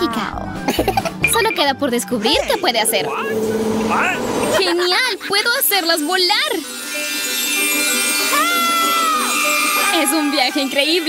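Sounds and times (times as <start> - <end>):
background music: 0.0 - 11.0
woman's high-pitched ooh: 8.3 - 10.7.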